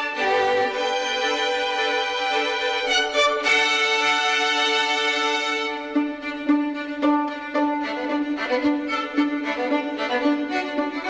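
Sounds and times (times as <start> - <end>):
classical violin and strings: 0.0 - 11.0.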